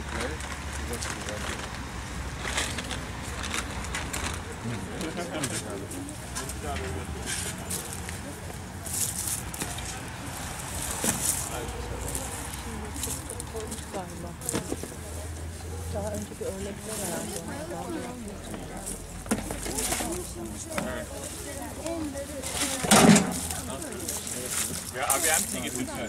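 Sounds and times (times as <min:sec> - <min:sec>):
people chattering: 0:00.0 - 0:26.0.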